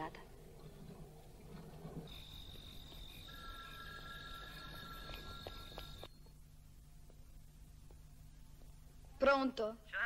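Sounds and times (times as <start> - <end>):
low steady tones: 0.0 - 9.2
crickets trilling: 0.7 - 6.2.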